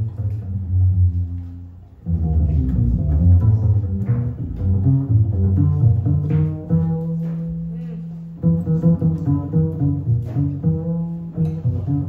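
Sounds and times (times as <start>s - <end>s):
double bass plucked notes: 0.0s - 12.0s.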